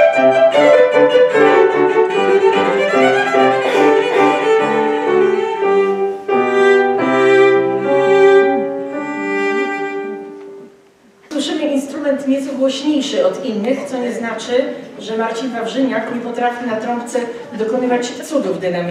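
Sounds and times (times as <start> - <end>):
bowed cello notes: 0.0 - 10.6
piano chords: 0.0 - 10.7.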